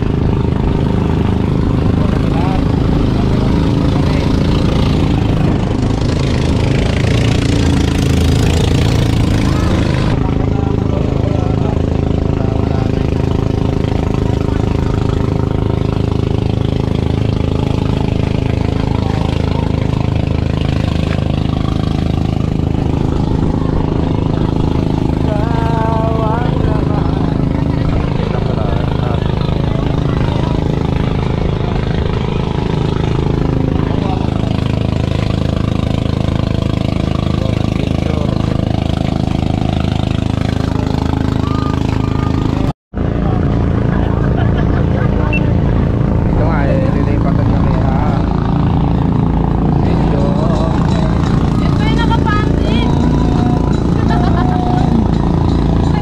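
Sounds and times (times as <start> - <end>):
boat engine droning: 0.0 - 56.0
indistinct voices: 17.2 - 35.6, 40.6 - 56.0.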